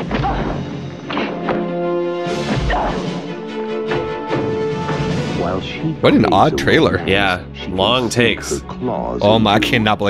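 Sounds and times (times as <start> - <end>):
film trailer music: 0.0 - 10.0.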